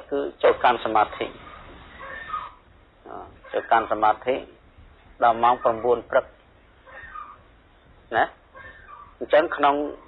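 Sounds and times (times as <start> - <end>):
man speaking: 0.0 - 1.4, 3.0 - 4.6, 5.2 - 6.4, 8.1 - 8.4, 9.2 - 10.0.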